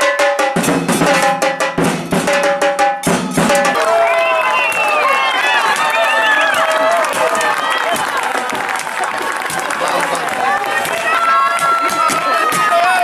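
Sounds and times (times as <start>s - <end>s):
snare drum: 0.0s - 3.9s
crowd shouting and cheering: 3.6s - 13.0s.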